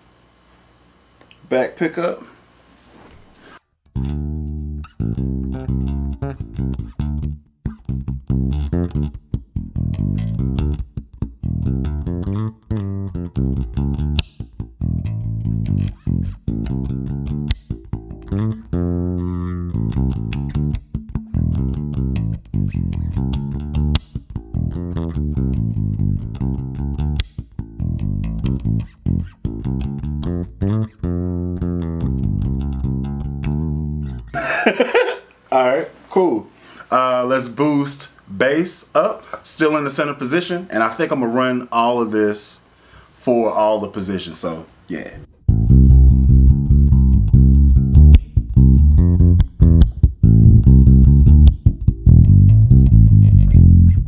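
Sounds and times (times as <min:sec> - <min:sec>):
electric bass fingerstyle notes: 0:03.8 - 0:34.8, 0:45.1 - 0:54.0.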